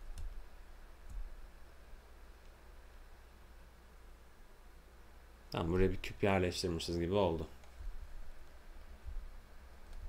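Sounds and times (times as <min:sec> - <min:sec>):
computer mouse clicking: 0:00.0 - 0:00.4
low steady hum: 0:00.0 - 0:10.0.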